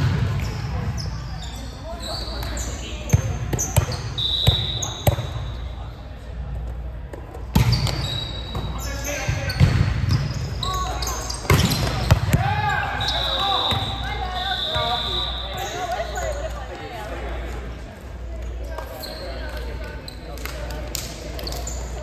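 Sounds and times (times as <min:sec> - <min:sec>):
shoe squeaks: 0:00.5 - 0:05.8, 0:07.6 - 0:16.6, 0:18.5 - 0:20.4, 0:21.4 - 0:22.0.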